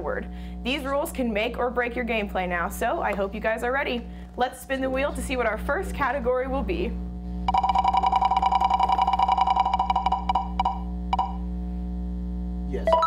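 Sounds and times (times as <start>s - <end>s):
steady ringing tone: 7.4s - 11.5s
spinning wheel ticking: 7.5s - 11.3s.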